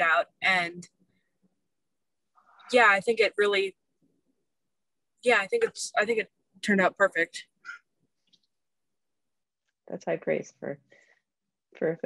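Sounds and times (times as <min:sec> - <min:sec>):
woman speaking: 0:00.0 - 0:00.9, 0:02.6 - 0:03.7, 0:05.2 - 0:07.6.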